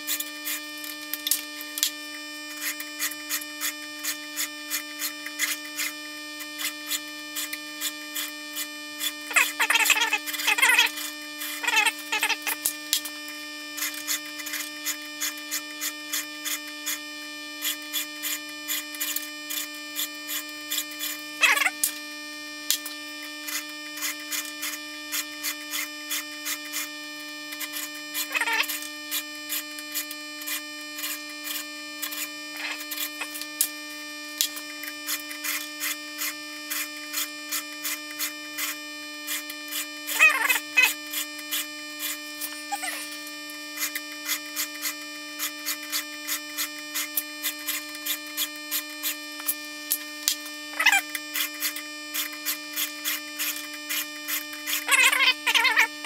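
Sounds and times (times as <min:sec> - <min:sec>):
steady hum: 0:00.0 - 0:56.0.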